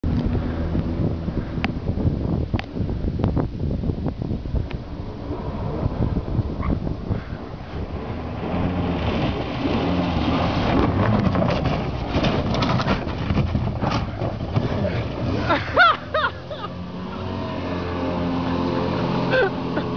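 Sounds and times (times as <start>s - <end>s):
jet boat engine drone: 0.0s - 19.9s.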